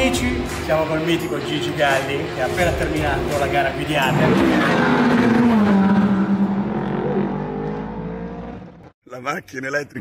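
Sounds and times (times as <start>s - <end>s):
car engine passing at speed: 1.9s - 8.9s.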